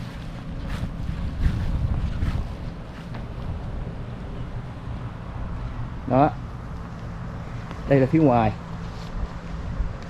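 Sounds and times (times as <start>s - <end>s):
faint footsteps: 0.0s - 3.8s
wind buffeting microphone: 0.0s - 10.0s.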